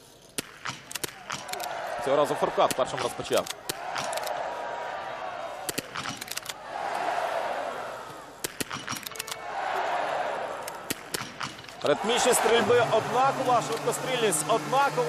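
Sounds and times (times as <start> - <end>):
crowd noise: 0.5 - 15.0.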